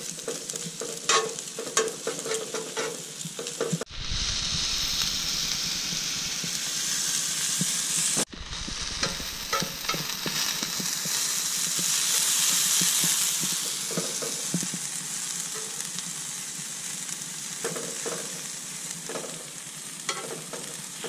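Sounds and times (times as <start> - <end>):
meat sizzling on a griddle: 0.0 - 21.0
metal tongs scraping griddle: 0.1 - 3.9, 7.7 - 14.5, 20.1 - 20.9.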